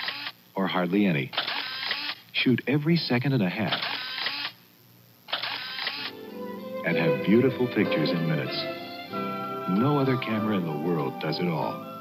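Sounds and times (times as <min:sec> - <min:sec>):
instant camera motor whir: 0:00.0 - 0:00.4, 0:01.4 - 0:02.2, 0:03.8 - 0:04.6, 0:05.3 - 0:06.2
music with held notes: 0:06.1 - 0:12.0.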